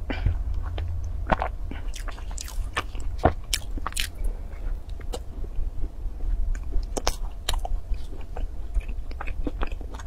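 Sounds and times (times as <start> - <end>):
steady low hum: 0.0 - 10.0
pastry chewing with mouth clicks: 0.5 - 10.0.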